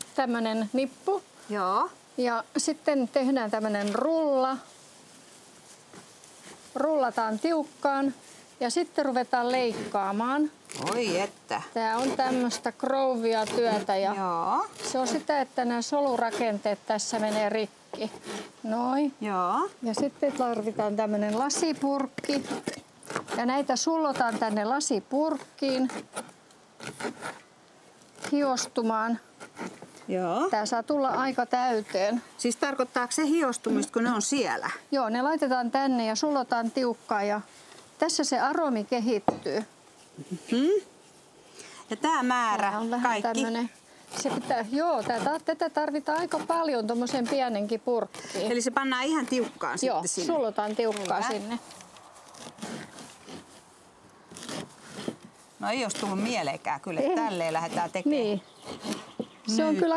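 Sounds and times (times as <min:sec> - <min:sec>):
knife cutting leaves on wood: 0:05.6 - 0:34.2, 0:42.1 - 0:59.9.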